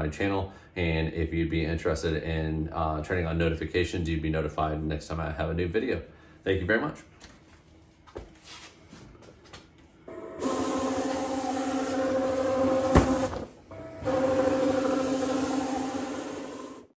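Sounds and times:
plotter motor buzzing whine: 10.1 - 17.0.

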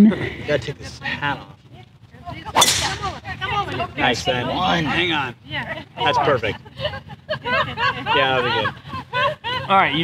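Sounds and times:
golf club striking ball: 2.5 - 3.8.

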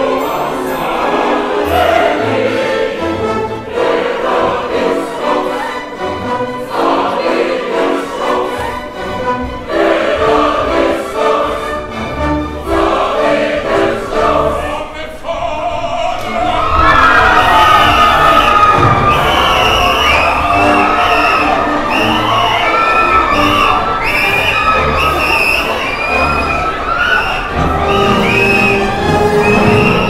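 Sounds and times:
orchestra playing: 0.0 - 14.8, 16.2 - 30.0
chorus singing and calling out: 0.0 - 30.0.

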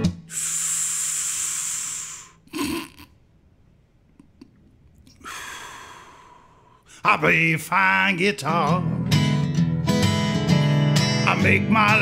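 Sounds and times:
hissing breath drawn in: 0.2 - 2.5, 5.2 - 7.0
soft exhale: 0.3 - 2.4, 5.1 - 7.0.

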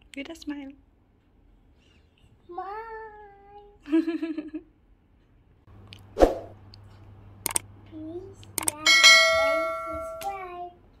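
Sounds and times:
small child's voice: 2.4 - 3.8, 7.9 - 9.1, 10.0 - 11.0
click: 7.4 - 7.6
notification bell ding: 8.9 - 10.3.

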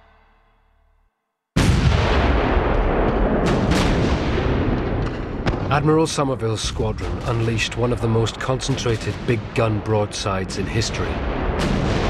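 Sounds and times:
big guns firing: 1.6 - 12.0.

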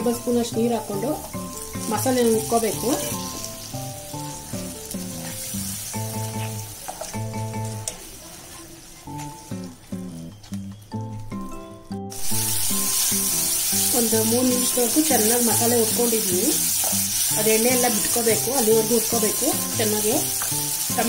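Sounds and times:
background music: 0.0 - 8.2, 9.1 - 21.0
masala sizzling in oil: 0.0 - 11.2, 12.1 - 21.0.

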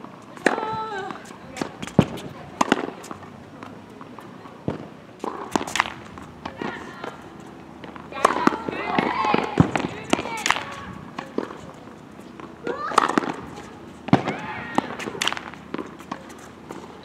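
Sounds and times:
voices talking: 0.0 - 17.0
tennis ball hits and bounces: 0.3 - 17.0.

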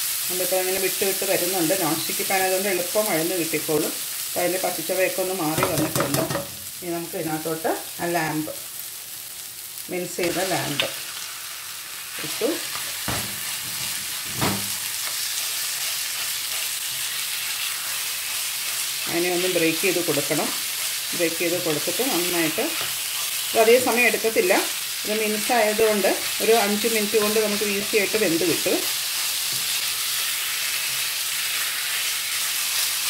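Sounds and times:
masala sizzling in a frying pan: 0.0 - 33.0.

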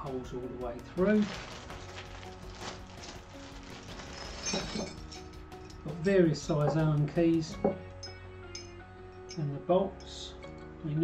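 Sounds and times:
background music: 0.0 - 11.0
plastic bag rustling: 0.9 - 5.2
metallic clinks of bolts: 6.6 - 10.7.

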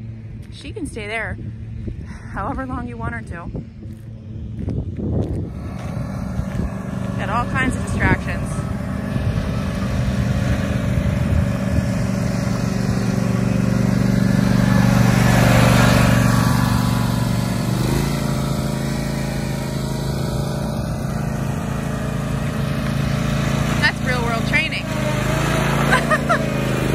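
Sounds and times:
riding lawn mower engine running: 0.0 - 26.9.

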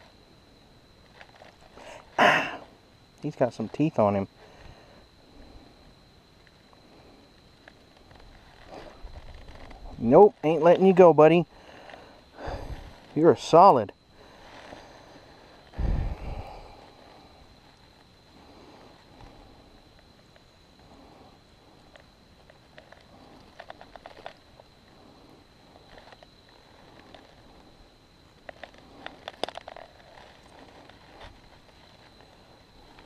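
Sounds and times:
faint high whine: 0.0 - 33.0
rapid clicking and rustling: 21.8 - 24.6, 28.4 - 33.0.

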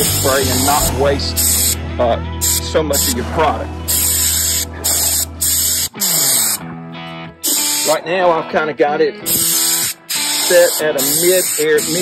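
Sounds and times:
paint sprayer hissing: 0.0 - 1.8, 2.4 - 6.6, 7.4 - 8.0, 9.3 - 12.0.

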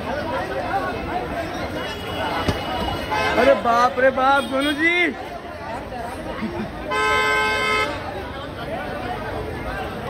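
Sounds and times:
crowd babble: 0.0 - 10.0
car horn: 1.8 - 4.9, 6.9 - 8.1.

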